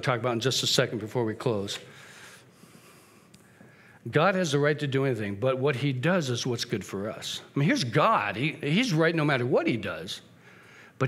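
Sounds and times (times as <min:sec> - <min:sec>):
man breathing in softly: 0:01.9 - 0:04.0, 0:10.4 - 0:11.0.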